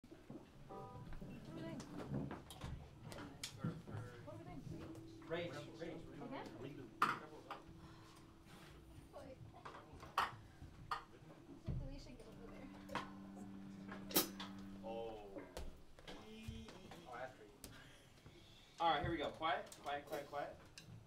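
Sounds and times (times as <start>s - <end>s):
soft murmured talk: 1.0s - 20.7s
amplified instrument held tone: 3.9s - 17.2s.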